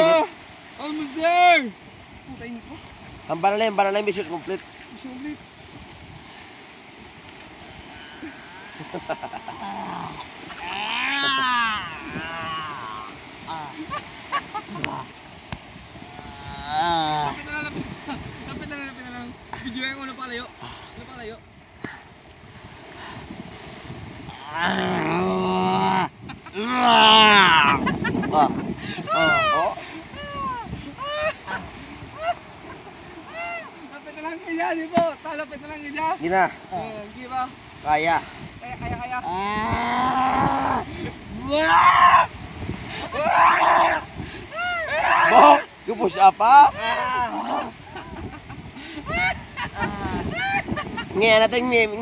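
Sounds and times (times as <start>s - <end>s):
person making drawn-out cries: 8.0s - 14.0s, 16.0s - 17.4s, 24.3s - 32.4s, 33.2s - 33.7s, 39.2s - 42.3s, 43.0s - 45.7s, 46.6s - 47.8s, 49.0s - 50.8s
person yelping: 9.0s - 13.9s, 24.3s - 31.6s, 33.2s - 33.7s, 39.3s - 42.3s, 43.0s - 45.7s, 46.6s - 47.7s, 49.1s - 50.7s.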